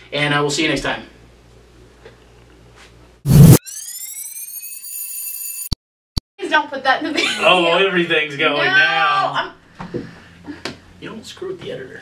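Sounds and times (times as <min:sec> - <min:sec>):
loud noise burst: 0:03.3 - 0:03.6
electronic tone gliding upward: 0:03.3 - 0:05.8.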